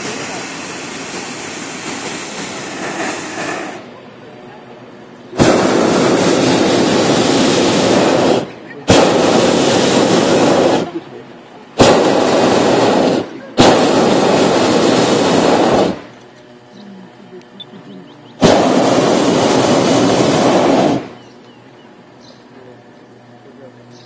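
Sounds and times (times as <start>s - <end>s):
propane burner roaring: 0.0s - 24.0s.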